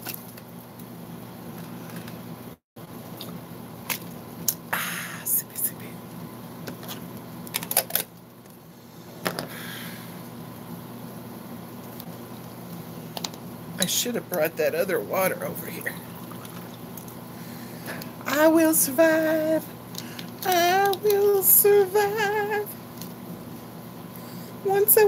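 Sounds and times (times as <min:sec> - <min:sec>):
steady low hum: 0:00.0 - 0:25.0.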